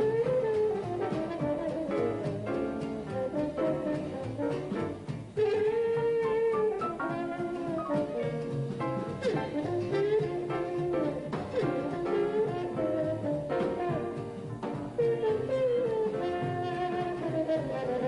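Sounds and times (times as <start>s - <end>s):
double bass: 0.0s - 18.0s
drums: 0.0s - 18.0s
piano: 0.0s - 18.0s
trombone jazz solo: 0.0s - 18.0s.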